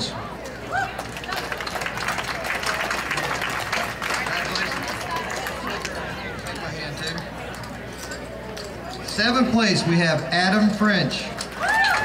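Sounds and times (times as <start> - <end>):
audience applauding: 0.8 - 5.9.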